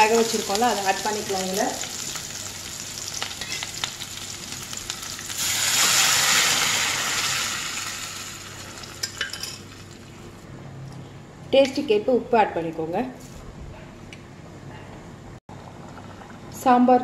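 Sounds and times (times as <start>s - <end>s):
vegetables sizzling in hot oil: 0.0s - 9.1s.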